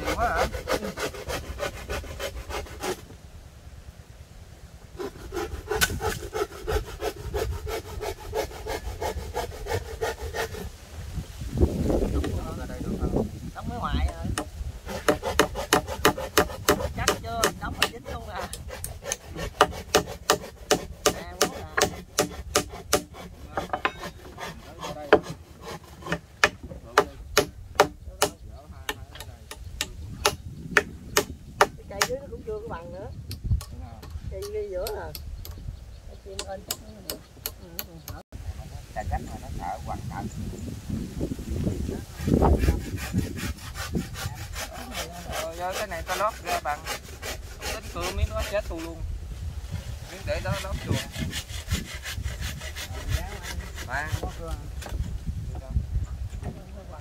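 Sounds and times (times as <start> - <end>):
hand saw cutting wood: 0.0 - 3.2, 5.0 - 10.7, 13.8 - 32.2, 42.1 - 49.0, 49.8 - 55.2.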